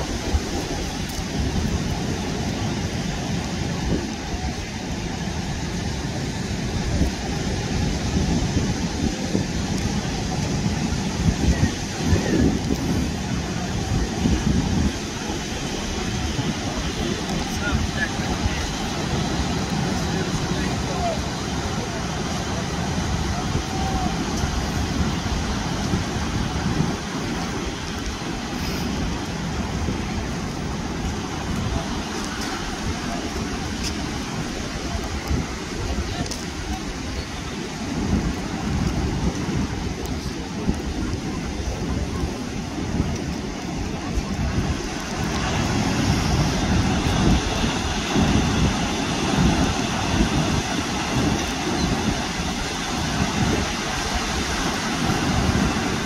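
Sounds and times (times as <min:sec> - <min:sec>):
faint voices: 0:00.0 - 0:56.0
waves breaking on shore: 0:00.0 - 0:56.0
wind buffeting microphone: 0:00.0 - 0:56.0.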